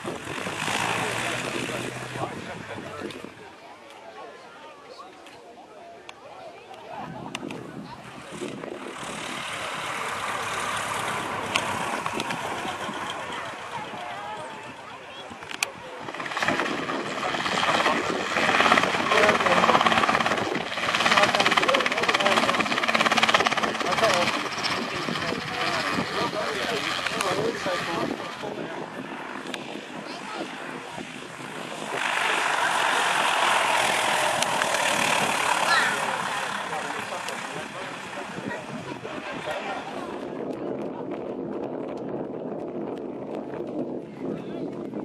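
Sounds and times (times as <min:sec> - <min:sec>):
light aircraft engine taxiing: 0:00.0 - 0:03.5, 0:07.0 - 0:41.0
small helicopter engine: 0:00.0 - 0:03.6, 0:06.9 - 0:45.0.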